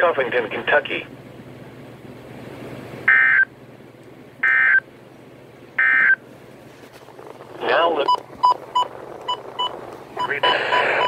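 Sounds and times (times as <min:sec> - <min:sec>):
radio button beeps: 0:08.0 - 0:11.0.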